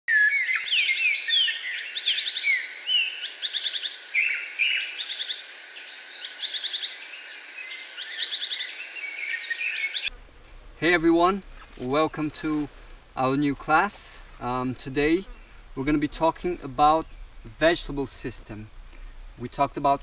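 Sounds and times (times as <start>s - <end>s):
birds chirping and trilling: 0.1s - 20.0s.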